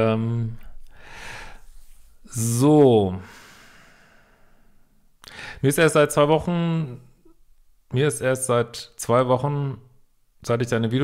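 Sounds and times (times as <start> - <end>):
man speaking: 0.0 - 0.6, 2.3 - 3.3, 5.6 - 7.1, 7.9 - 11.0.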